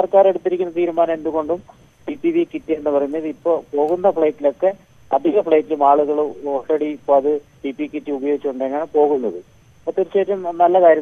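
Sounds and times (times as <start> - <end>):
man talking over telephone: 0.0 - 11.0.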